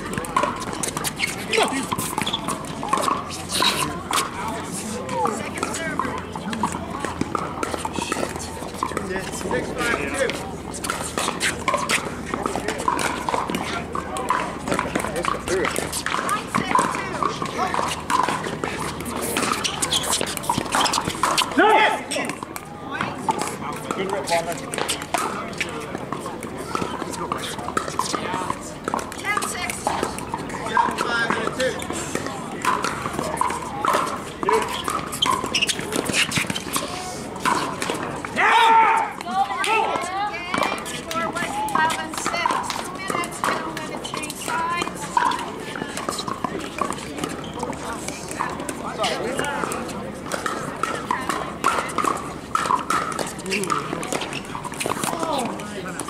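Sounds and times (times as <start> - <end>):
indistinct chatter of crowd: 0.0 - 56.0
paddles hitting plastic balls: 0.0 - 56.0.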